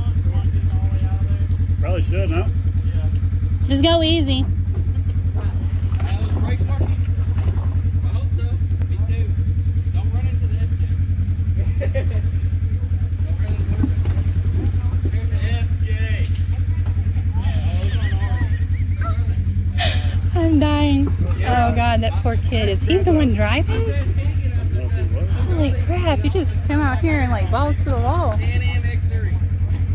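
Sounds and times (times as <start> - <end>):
faint voices talking: 0.0 - 29.9
vehicle engine running low: 0.0 - 29.9.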